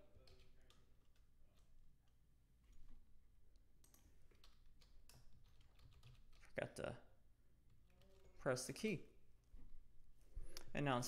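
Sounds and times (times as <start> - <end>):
faint keyboard typing: 0.0 - 7.0, 7.6 - 8.8.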